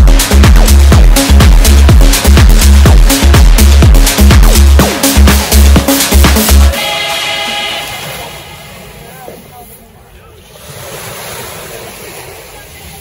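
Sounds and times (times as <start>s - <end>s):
dance music: 0.0s - 9.0s
waves washing over pebbles: 10.4s - 13.0s.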